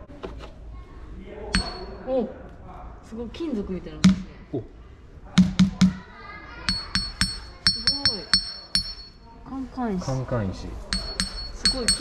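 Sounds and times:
hammer tapping ringing stone: 1.6s - 2.0s, 6.7s - 9.2s, 10.9s - 12.0s
hammer knocking on stone: 4.0s - 4.3s, 5.4s - 6.0s.

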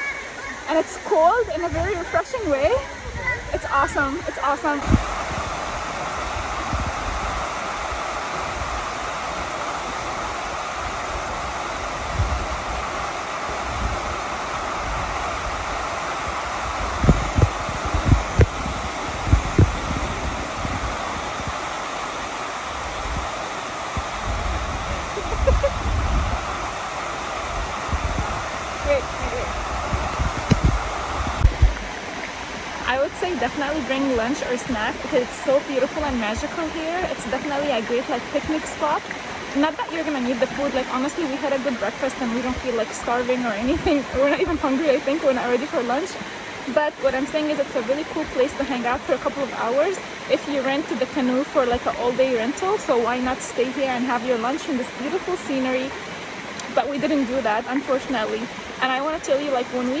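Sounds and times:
waterfall rushing: 0.0s - 60.0s
wind thumps on microphone: 1.3s - 35.0s.

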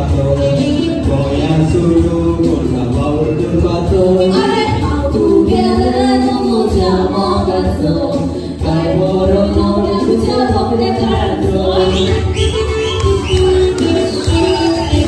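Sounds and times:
man and woman singing duet: 0.0s - 15.0s
musical accompaniment: 0.0s - 15.0s.

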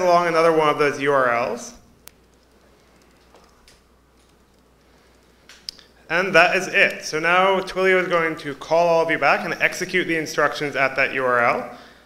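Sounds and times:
low room hum: 0.0s - 12.0s
laptop keys clicking: 2.0s - 5.8s.

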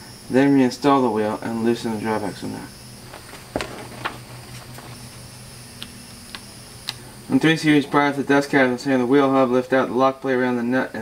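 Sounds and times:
steady low hum: 0.0s - 11.0s
paper pages tapping and clicking: 3.1s - 5.0s.

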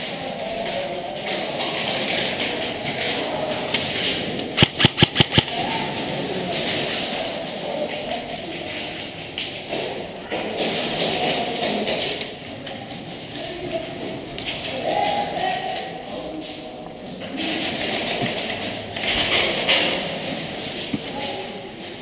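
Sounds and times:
steady background noise: 0.0s - 22.0s
rapid game gunshots: 4.6s - 5.6s.

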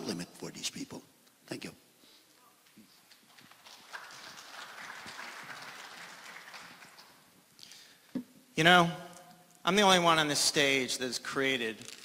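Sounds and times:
audience applause: 3.4s - 7.3s.

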